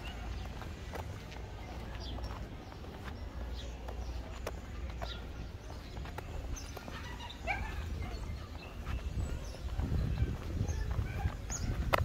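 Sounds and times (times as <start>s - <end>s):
dog barking: 6.9s - 8.4s.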